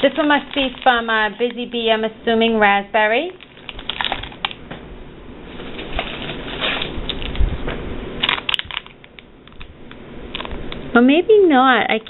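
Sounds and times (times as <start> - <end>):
cellophane bags crinkling: 0.0 - 2.0, 3.2 - 4.6, 8.2 - 9.7.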